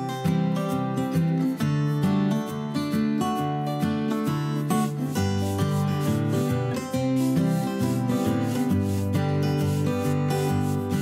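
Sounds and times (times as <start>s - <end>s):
acoustic guitar music: 0.0s - 11.0s
paintbrush rubbing on clay: 5.0s - 11.0s.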